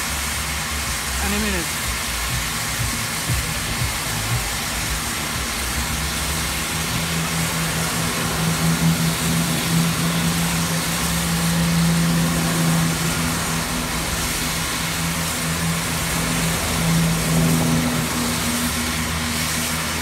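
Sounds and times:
low engine hum: 0:00.0 - 0:20.0
steam hissing: 0:00.0 - 0:20.0.

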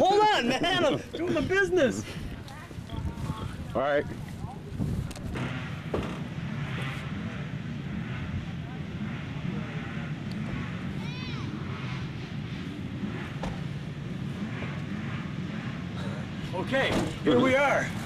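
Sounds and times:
faint voices: 0:00.0 - 0:13.0
low engine drone: 0:00.0 - 0:18.0.

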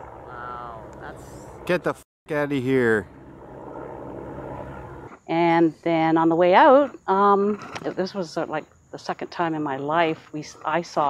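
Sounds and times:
helicopter flying overhead: 0:00.0 - 0:11.0.

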